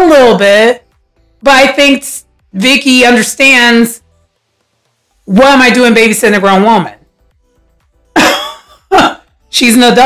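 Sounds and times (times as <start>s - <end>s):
woman laughing: 8.2s - 9.3s.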